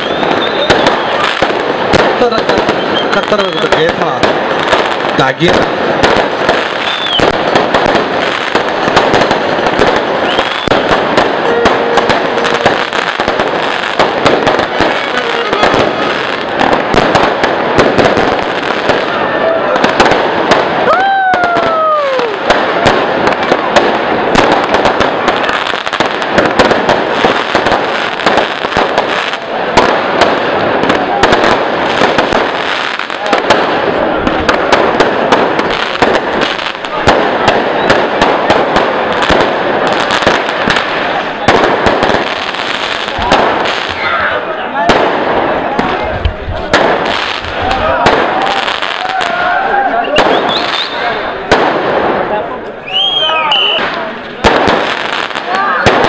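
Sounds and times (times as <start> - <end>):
falling firework whistle: 0.0 - 1.4, 2.6 - 3.9, 6.7 - 7.4, 10.1 - 12.9, 20.8 - 22.6, 37.7 - 38.2, 48.4 - 51.4, 52.8 - 54.0
firecracker bursts and bangs: 0.0 - 56.0.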